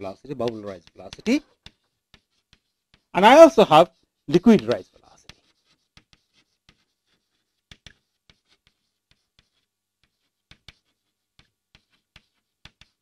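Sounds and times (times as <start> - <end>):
chalk tapping and scratching: 0.0 - 13.0.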